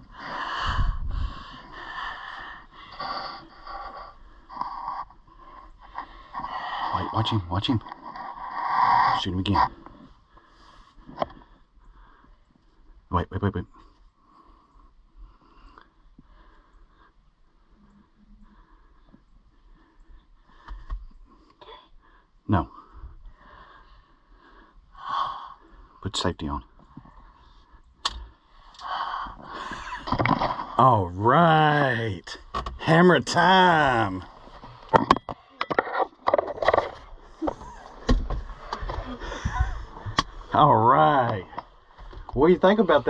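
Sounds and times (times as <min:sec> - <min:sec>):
soft breathing: 0:00.0 - 0:07.2, 0:08.2 - 0:13.1, 0:13.7 - 0:30.7
handling noises on microphone: 0:32.4 - 0:43.0.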